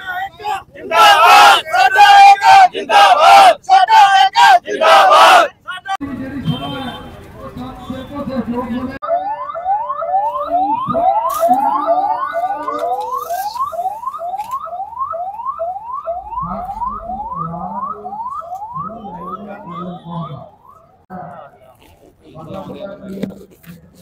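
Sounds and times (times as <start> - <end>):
electronic siren yelping: 9.0 - 21.1.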